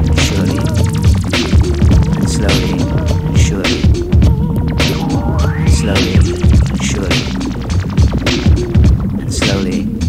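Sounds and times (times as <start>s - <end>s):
tone sliding upward: 0.0s - 9.3s
deep throbbing bassline: 0.0s - 10.0s
instrumental hip-hop beat: 0.0s - 10.0s.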